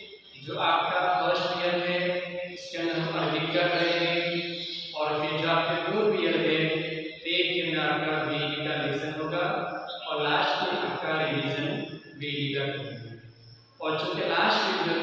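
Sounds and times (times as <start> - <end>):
man chanting melodically: 0.0 - 13.1, 13.8 - 15.0.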